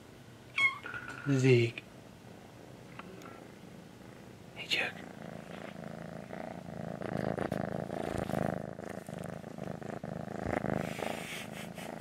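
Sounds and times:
kitten purring: 0:03.0 - 0:12.0.

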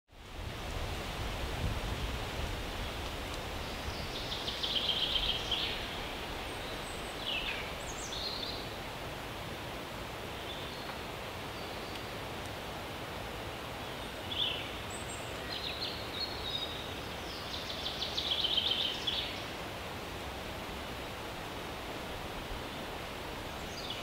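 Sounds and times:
leaves rustling: 0:00.1 - 0:24.0
bird calls: 0:03.6 - 0:08.8.

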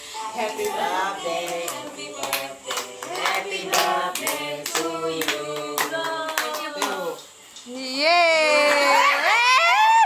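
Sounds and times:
people singing a birthday song: 0:00.0 - 0:07.8
people clapping along: 0:00.6 - 0:07.3.

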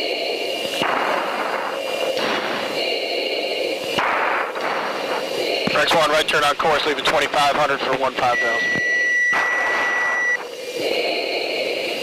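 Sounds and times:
high whine: 0:00.0 - 0:12.0
jet engine and air rush: 0:00.0 - 0:12.0.

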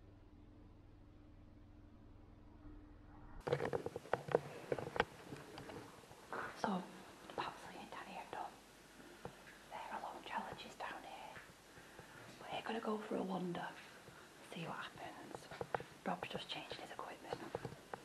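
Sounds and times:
person whispering: 0:06.4 - 0:08.6, 0:09.7 - 0:11.4, 0:12.4 - 0:17.8.

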